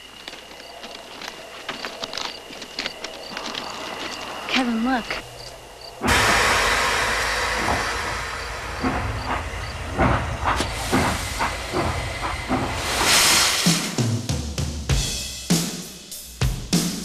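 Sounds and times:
steam train chuffing: 4.6 - 16.9
steam hissing: 5.6 - 15.6.

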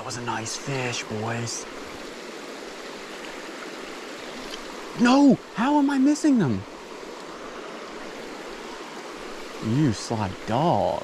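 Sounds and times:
creek water running over rocks: 0.0 - 11.0.

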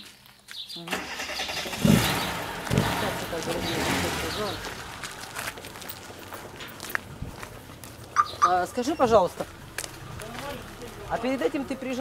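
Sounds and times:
car engine starting and running: 0.9 - 12.0.

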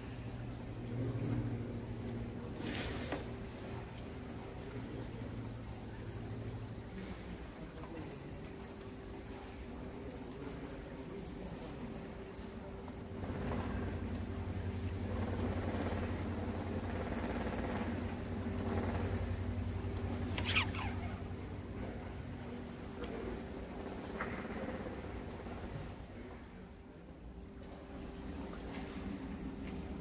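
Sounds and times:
low mechanical hum: 0.0 - 30.0
noisy wash: 0.0 - 30.0.

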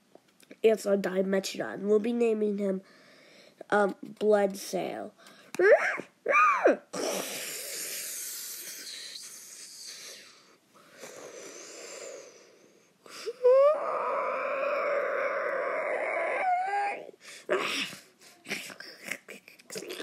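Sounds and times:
person making dinosaur noises: 5.6 - 10.4, 13.4 - 20.0.

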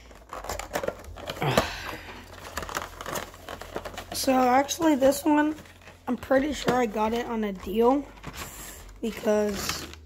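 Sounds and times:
cardboard and plastic crinkling: 0.0 - 10.0.

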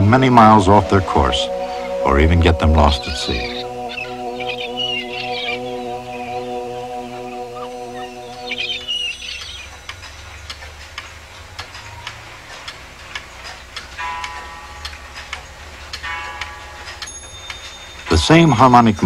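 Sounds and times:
soft music: 0.0 - 11.4, 14.0 - 19.0
gull cries: 0.4 - 9.6
clock ticking: 8.2 - 19.0.

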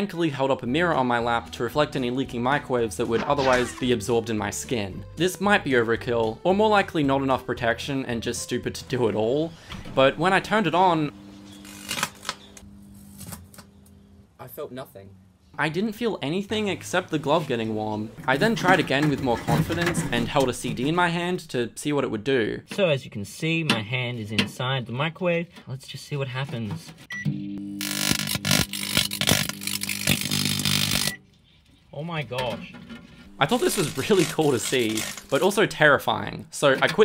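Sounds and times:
microwave transformer hum: 9.3 - 15.9, 27.1 - 31.4
crackling electric sparks: 11.6 - 12.4, 27.8 - 31.2, 33.4 - 35.6
microwave oven beep: 27.1 - 27.6.

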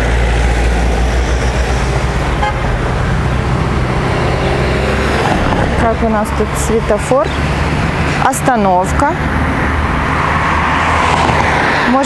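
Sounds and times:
car passing on road: 0.0 - 12.0.

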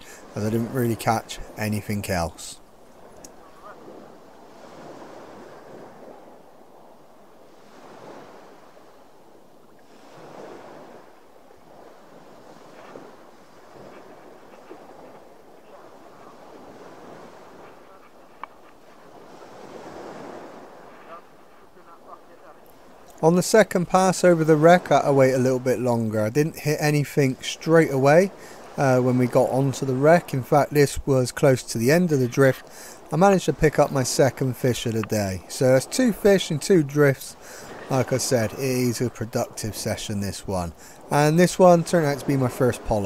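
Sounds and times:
sea water lapping beside boat: 0.0 - 43.0.

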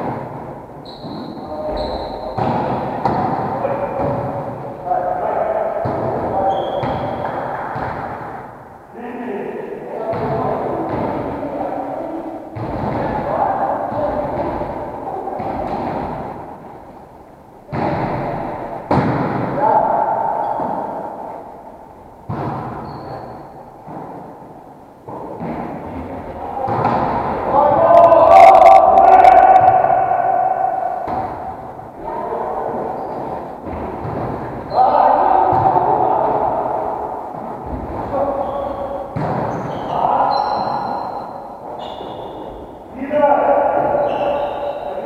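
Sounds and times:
echoing sports hall noise: 0.0 - 45.0
volleyball being hit: 2.3 - 4.5, 5.8 - 8.4, 12.6 - 13.3, 14.0 - 16.7, 17.7 - 19.6, 22.2 - 24.3, 25.1 - 27.6, 30.9 - 31.7, 33.1 - 34.6, 35.4 - 38.1, 38.7 - 39.8
long drawn-out shout: 27.5 - 31.0.

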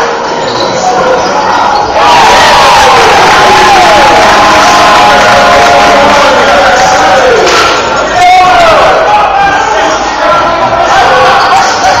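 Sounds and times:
crowd cheering and shouting: 0.0 - 12.0
whoops and yells: 2.0 - 7.5.

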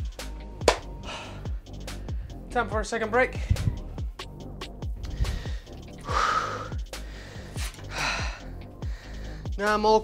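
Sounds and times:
background music with bass beat: 0.0 - 10.0
man breathing heavily: 0.9 - 2.5, 3.4 - 4.2, 4.8 - 9.6.

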